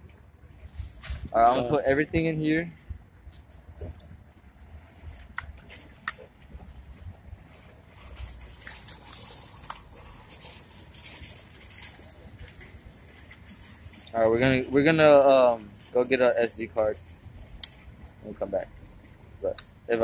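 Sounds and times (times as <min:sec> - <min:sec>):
rustling: 0:03.4 - 0:20.0.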